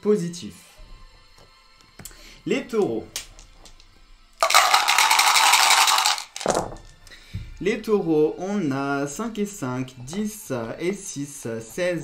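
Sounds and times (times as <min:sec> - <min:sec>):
dice clicking: 0:03.2 - 0:07.0
dice knocking on a tray: 0:04.4 - 0:06.9
dice rattling in a cup: 0:04.4 - 0:07.0.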